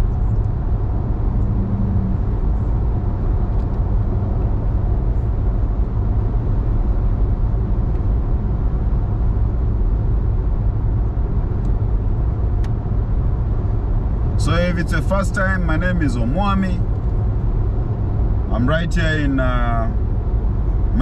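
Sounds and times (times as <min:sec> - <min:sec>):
car cabin road rumble: 0:00.0 - 0:21.0.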